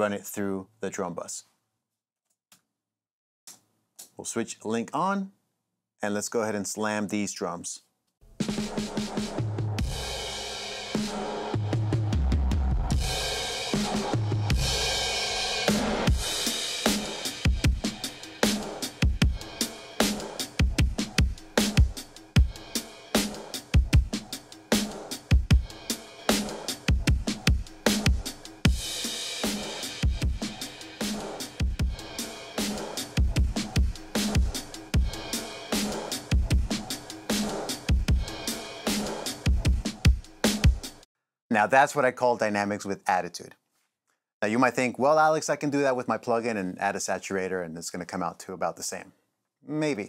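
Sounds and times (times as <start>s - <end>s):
fast busy drum beat: 8.4s - 10.2s, 12.9s - 41.0s.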